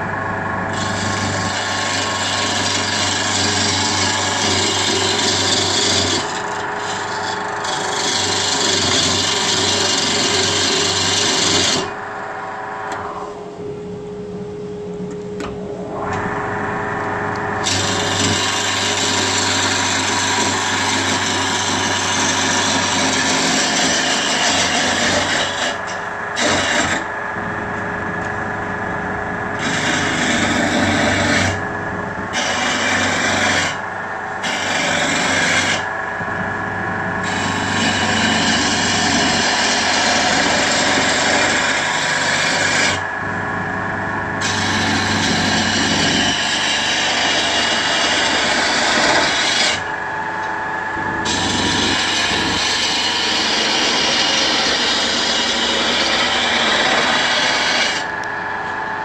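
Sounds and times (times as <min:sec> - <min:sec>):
gouge scraping spinning wood: 0:00.0 - 0:12.7, 0:17.5 - 0:27.6, 0:29.6 - 0:43.3, 0:44.4 - 0:50.4, 0:51.0 - 0:58.9
lathe machine hum: 0:00.0 - 0:59.0.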